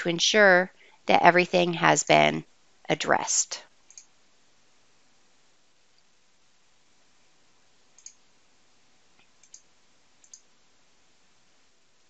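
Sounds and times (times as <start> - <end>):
computer mouse clicks: 3.9 - 4.1, 8.0 - 8.2, 9.2 - 10.5.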